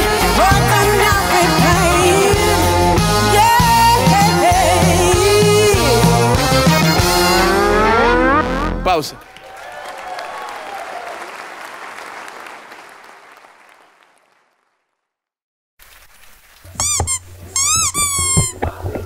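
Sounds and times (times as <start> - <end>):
audience applause: 9.2 - 15.0.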